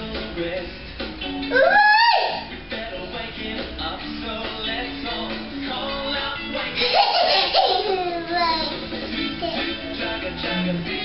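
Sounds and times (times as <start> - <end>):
children's song from television: 0.0 - 11.0
young child's voice: 7.8 - 8.8.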